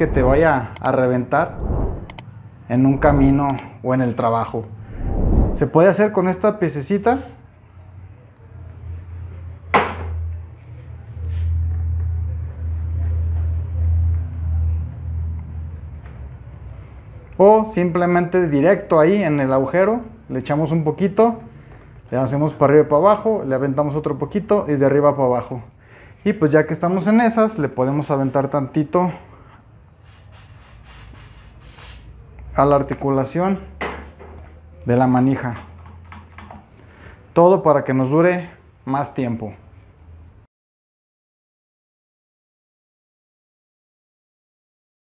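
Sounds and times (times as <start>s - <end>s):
handling noise rumble: 0.0s - 0.8s, 2.9s - 3.6s
sharp click: 3.2s - 3.6s.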